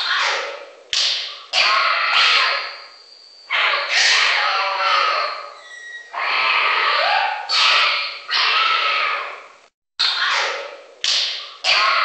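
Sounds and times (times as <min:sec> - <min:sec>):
rough animal calls: 0:03.5 - 0:12.0.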